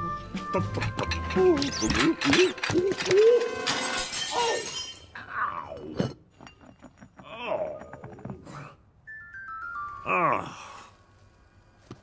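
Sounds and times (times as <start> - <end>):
china plates smashing: 0.8 - 5.2.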